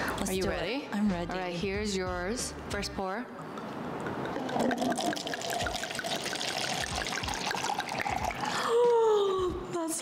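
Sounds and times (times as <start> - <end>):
woman speaking: 0.1 - 3.3, 9.2 - 10.0
wine pouring into cup: 4.1 - 8.7.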